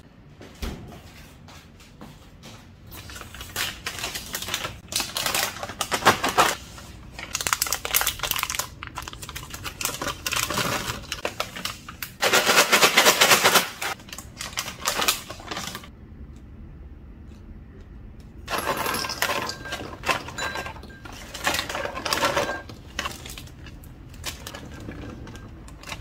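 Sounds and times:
plastic snack pouch crinkling: 0:03.0 - 0:15.9.

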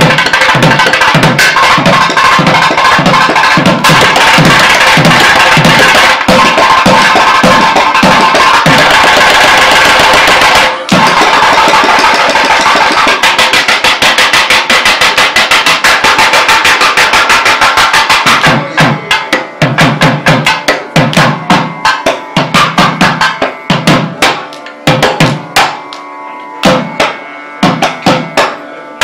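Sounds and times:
barrel drums playing: 0:00.0 - 0:26.0, 0:26.6 - 0:28.6.

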